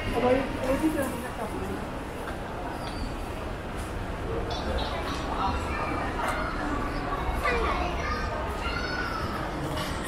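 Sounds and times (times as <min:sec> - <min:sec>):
people talking: 0:04.4 - 0:09.6.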